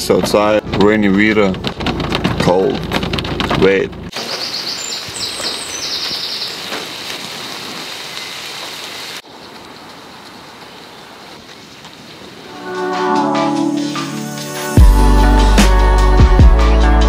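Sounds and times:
rain falling on leaves: 4.1s - 12.5s
music: 12.5s - 17.0s.

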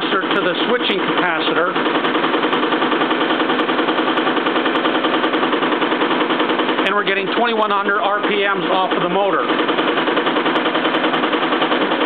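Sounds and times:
motor rig humming and rattling: 0.0s - 12.0s.

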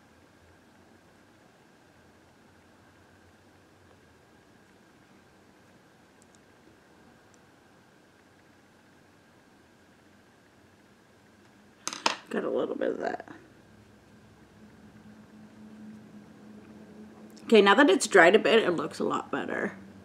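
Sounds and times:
faint high hum: 0.0s - 20.0s
tiny ticks: 6.2s - 6.5s.

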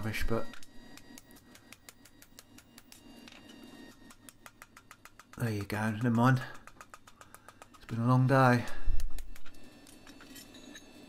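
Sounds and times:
metal tools clinking on anvil: 10.0s - 11.0s.

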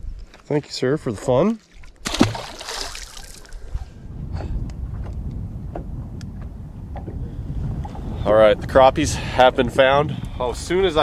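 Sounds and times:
fish splashing into water: 1.9s - 3.6s.

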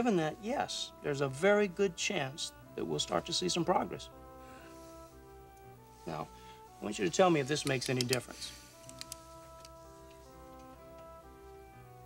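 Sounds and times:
soft music of held chords: 0.0s - 12.0s
quick clicks: 7.6s - 9.8s.

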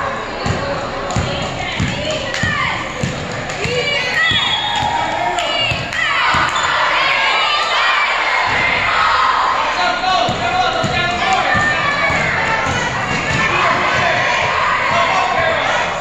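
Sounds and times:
people shouting and cheering: 0.0s - 16.0s
basketball bouncing on gym floor: 0.4s - 6.7s, 10.2s - 15.4s.

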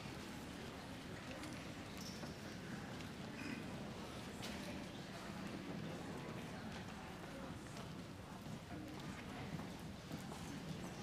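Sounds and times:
murmur of audience chatter: 0.0s - 11.0s.

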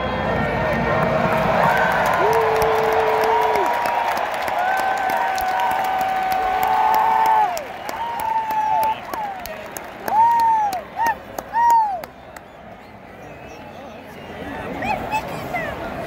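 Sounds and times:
stadium crowd cheering and applauding: 0.0s - 15.2s.

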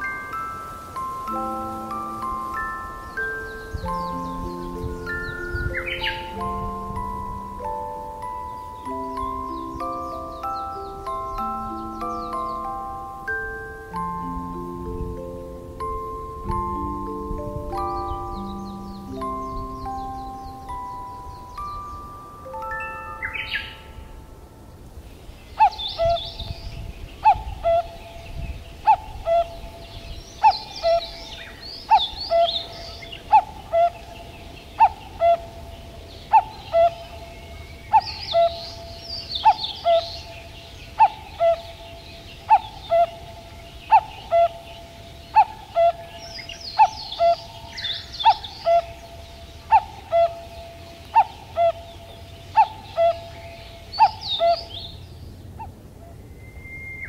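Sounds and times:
small birds chirping song: 0.0s - 57.0s.

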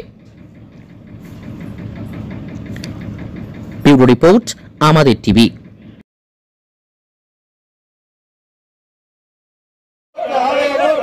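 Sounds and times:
engine rumbling: 0.0s - 6.0s.

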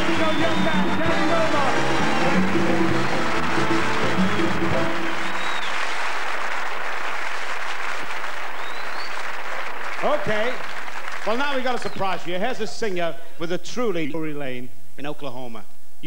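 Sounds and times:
live band music: 0.0s - 5.8s
audience applauding: 0.0s - 12.4s.

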